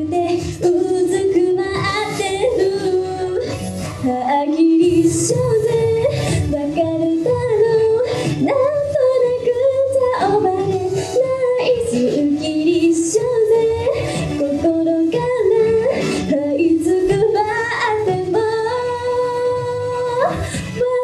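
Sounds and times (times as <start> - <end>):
woman singing pop song: 0.0 - 21.0.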